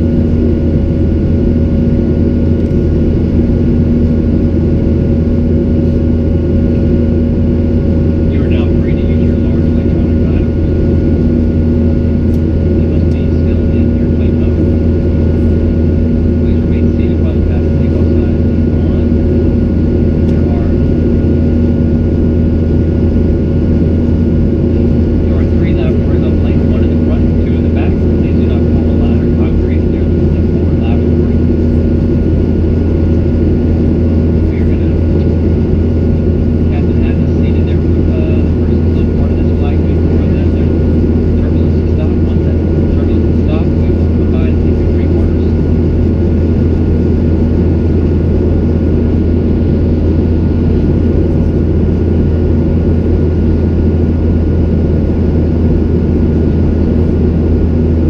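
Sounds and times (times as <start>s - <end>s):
airplane cabin engine roar: 0.0s - 58.0s
faint passenger voices: 7.8s - 22.7s, 24.2s - 53.3s.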